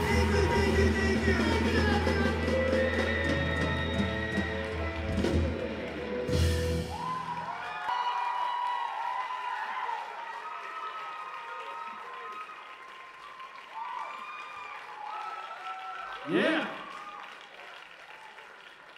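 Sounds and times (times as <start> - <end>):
audience cheering and applauding: 0.0 - 18.9.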